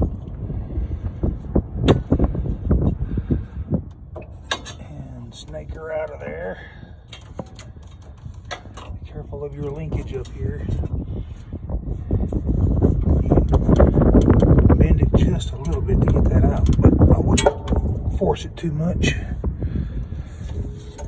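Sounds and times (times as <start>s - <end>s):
low rumble: 0.0s - 21.0s
clicks and knocks of wires: 3.8s - 4.9s, 7.0s - 9.0s, 13.4s - 14.6s, 15.5s - 18.1s.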